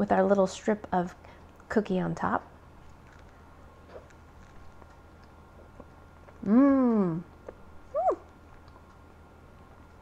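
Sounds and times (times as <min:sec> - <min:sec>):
woman humming approval: 0:06.4 - 0:07.3, 0:07.9 - 0:08.3.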